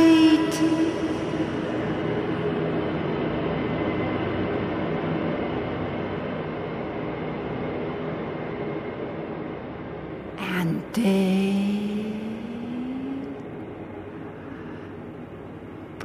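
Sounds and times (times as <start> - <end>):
rumbling ambient drone: 0.0 - 16.0.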